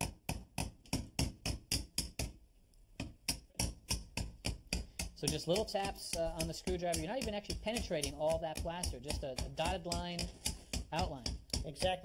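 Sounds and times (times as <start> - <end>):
hammer tapping screwdriver: 3.0 - 12.0.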